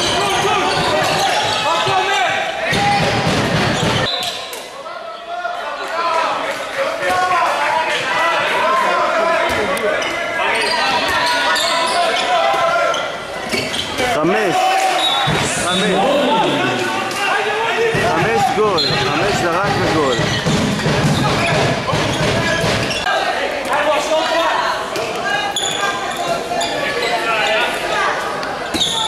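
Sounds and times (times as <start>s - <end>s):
players shouting: 14.2s - 28.1s.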